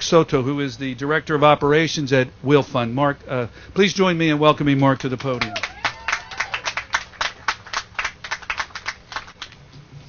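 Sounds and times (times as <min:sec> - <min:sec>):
audience applauding: 0:05.0 - 0:09.6.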